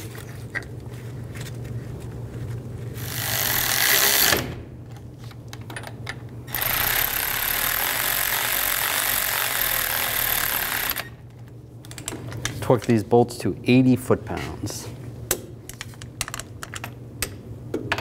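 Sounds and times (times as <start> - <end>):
power ratchet running: 3.0 - 4.5, 6.5 - 11.2.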